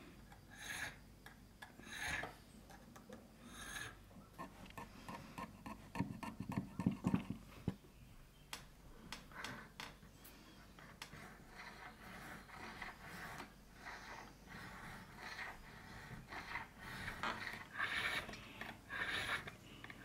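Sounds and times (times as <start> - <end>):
file rasping on brass: 1.8 - 2.3, 3.5 - 7.2, 10.8 - 20.0.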